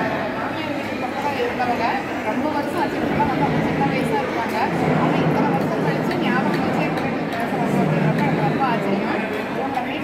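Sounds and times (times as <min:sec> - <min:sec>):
babble of voices: 0:00.0 - 0:10.0.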